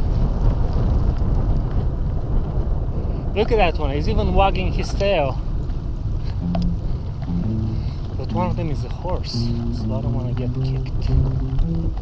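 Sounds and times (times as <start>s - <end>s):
bicycle road rumble: 0.0s - 12.0s
wind on microphone: 0.0s - 12.0s
soft background music: 6.4s - 8.7s, 9.3s - 12.0s.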